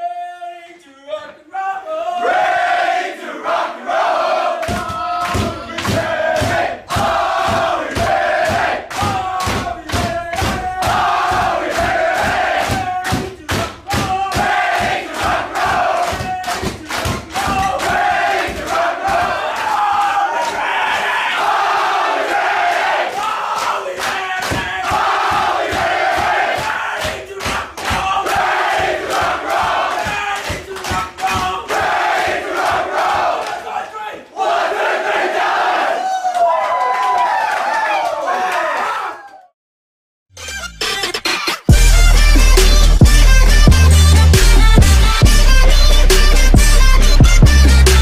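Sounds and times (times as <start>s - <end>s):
team singing and chanting: 1.0s - 36.0s.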